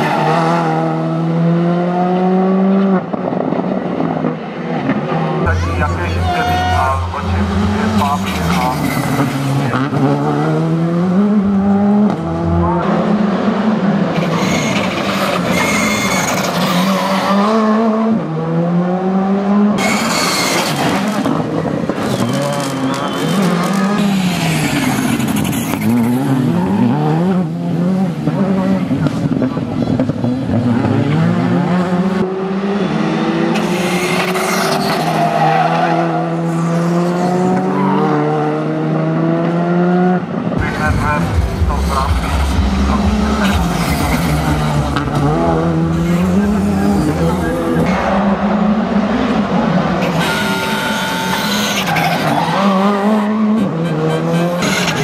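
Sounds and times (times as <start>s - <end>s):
rally car engines revving: 0.0s - 55.0s
tyre squeal: 14.2s - 17.4s, 19.8s - 21.0s, 22.0s - 27.0s, 33.6s - 36.6s, 50.0s - 55.0s.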